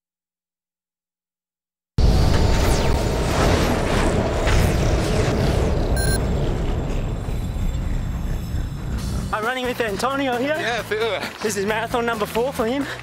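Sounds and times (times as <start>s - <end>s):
booming rumble music: 2.0s - 10.1s
electronic chime: 6.0s - 6.2s.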